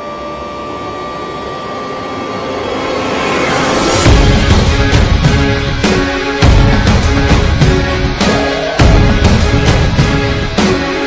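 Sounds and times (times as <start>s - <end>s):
steady high tone: 0.0s - 11.0s.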